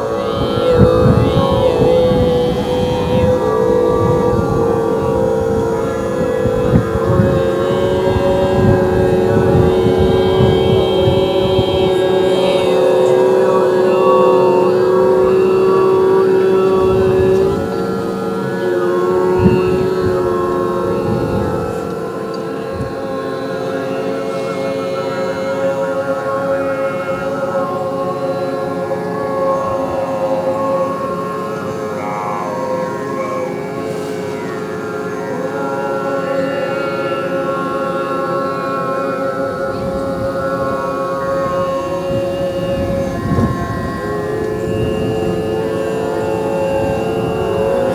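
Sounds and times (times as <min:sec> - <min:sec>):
group overtone singing drone: 0:00.0 - 0:47.9.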